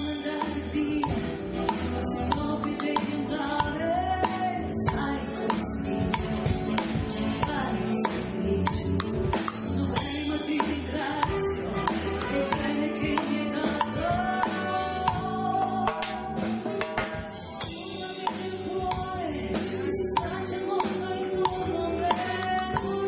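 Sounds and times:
woman singing: 0:00.0 - 0:16.6, 0:17.6 - 0:23.0
steady drum beat: 0:00.0 - 0:23.0
trumpet: 0:11.2 - 0:15.2.

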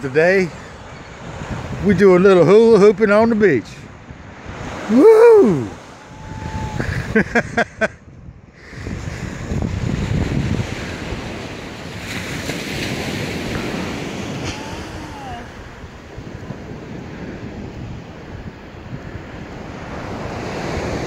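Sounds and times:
surf washing on beach: 0:00.0 - 0:21.0
wind buffeting microphone: 0:00.0 - 0:21.0.

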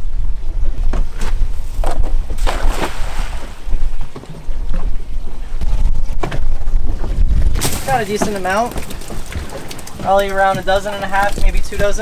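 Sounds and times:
wind buffeting microphone: 0:00.0 - 0:12.0
cast net splashing into water: 0:02.4 - 0:03.6, 0:07.6 - 0:10.1.

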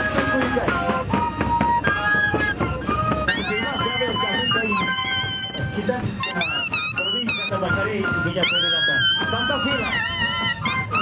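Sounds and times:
flute ensemble playing: 0:00.0 - 0:11.0.

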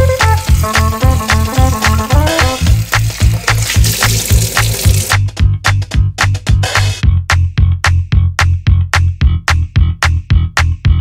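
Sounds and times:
background music with driving beat: 0:00.0 - 0:11.0.

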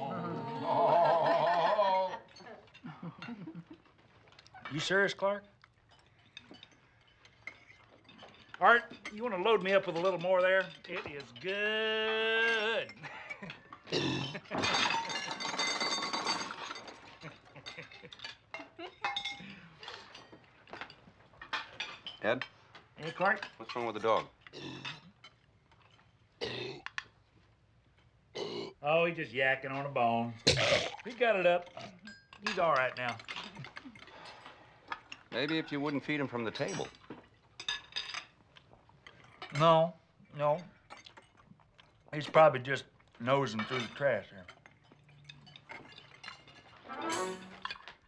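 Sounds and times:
silverware clinking on plates: 0:02.2 - 0:27.2, 0:30.2 - 0:48.0.

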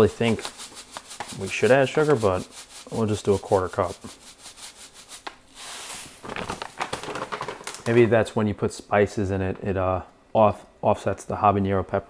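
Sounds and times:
sugar pouring into metal pot: 0:00.0 - 0:06.0
plastic bag rustling: 0:03.4 - 0:08.3.

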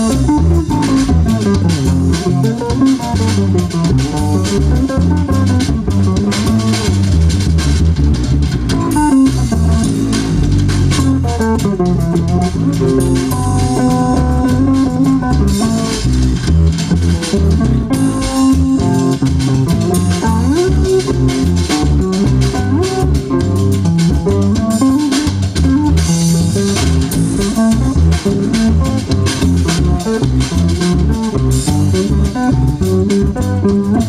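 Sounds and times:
bass guitar: 0:00.0 - 0:34.0
drums: 0:00.0 - 0:34.0
steady beat: 0:00.0 - 0:34.0
twelve-string guitar: 0:00.0 - 0:34.0.

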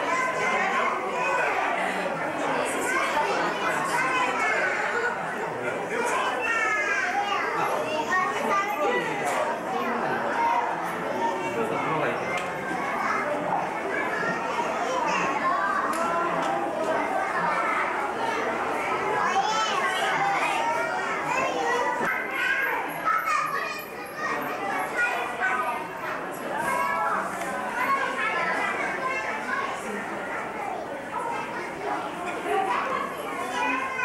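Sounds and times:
children talking and calling out: 0:00.0 - 0:34.0.

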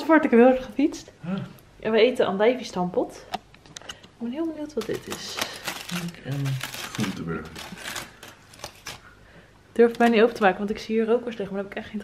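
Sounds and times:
aluminium foil crinkling: 0:04.3 - 0:09.2, 0:09.8 - 0:10.9.

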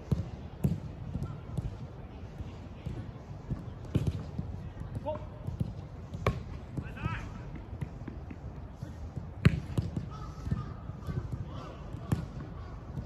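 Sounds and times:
football being kicked: 0:00.1 - 0:01.7, 0:03.9 - 0:08.0, 0:09.3 - 0:13.0.

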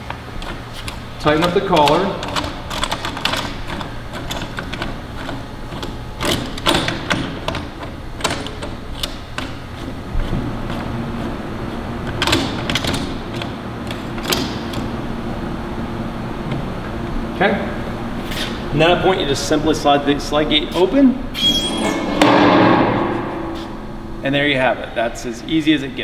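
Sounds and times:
steady low hum: 0:00.0 - 0:26.0
metal clicks and knocks: 0:00.4 - 0:09.9.

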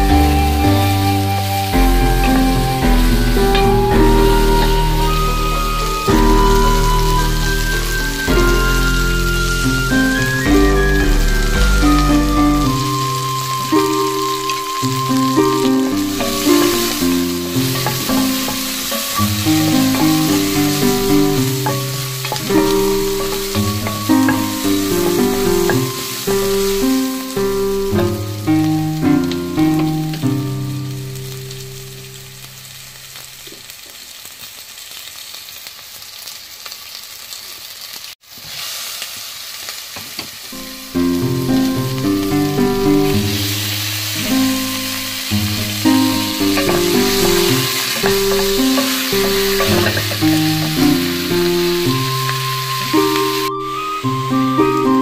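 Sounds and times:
instrumental background music: 0:00.0 - 0:32.4, 0:40.6 - 0:55.0
onions and beef sizzling: 0:00.0 - 0:55.0
wooden spoon stirring a pot: 0:15.2 - 0:27.1, 0:45.5 - 0:52.6.

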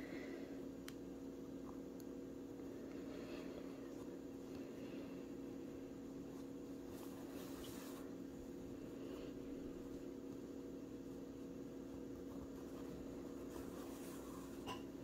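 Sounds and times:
steady low hum: 0:00.0 - 0:15.0
yarn rustling through fabric: 0:05.6 - 0:15.0.

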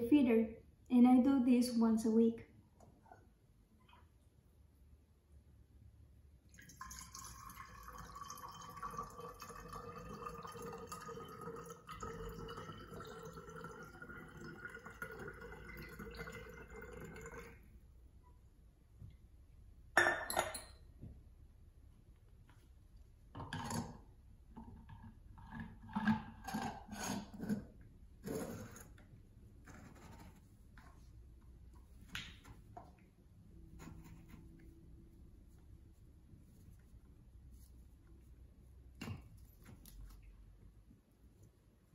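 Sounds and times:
liquid trickling into glass bottle: 0:06.5 - 0:17.7.

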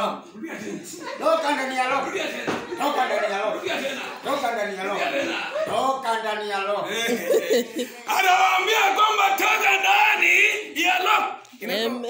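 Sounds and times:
voices shouting together: 0:08.0 - 0:11.4.

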